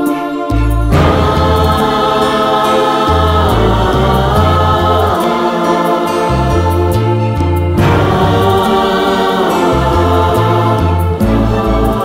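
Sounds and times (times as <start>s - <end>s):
male choir singing a hymn: 0.0s - 12.0s
orchestral accompaniment: 0.9s - 12.0s.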